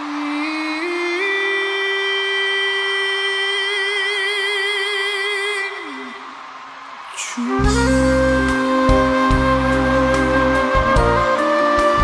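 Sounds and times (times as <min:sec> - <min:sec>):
singer holding a high note: 0:07.1 - 0:12.0.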